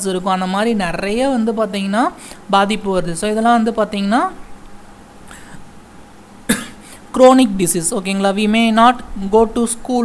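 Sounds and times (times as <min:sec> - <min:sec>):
person coughing: 0:06.5 - 0:07.0.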